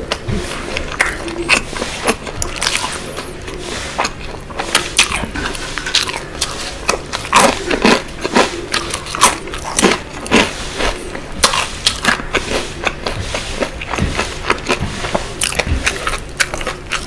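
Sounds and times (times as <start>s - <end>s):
chewing crunchy fried chicken: 0.0s - 17.0s.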